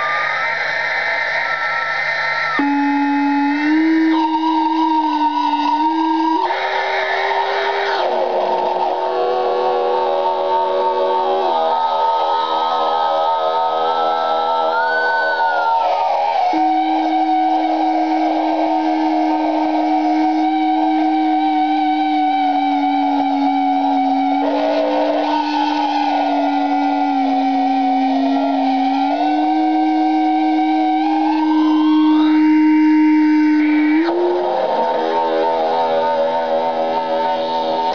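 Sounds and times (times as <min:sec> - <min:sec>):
electronic guitar drone: 0:00.0 - 0:37.9.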